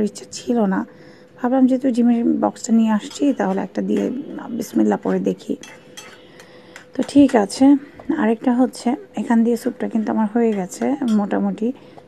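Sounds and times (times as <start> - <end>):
metal spoon scraping metal pot: 5.6 - 6.4.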